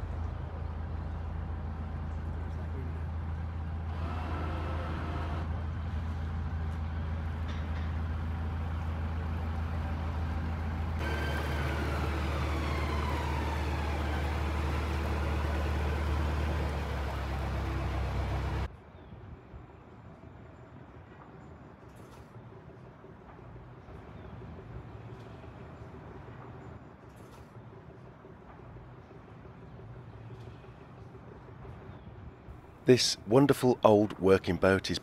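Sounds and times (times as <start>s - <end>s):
diesel engine humming: 3.0s - 7.4s, 8.0s - 18.7s
tone gliding downward: 11.0s - 18.7s.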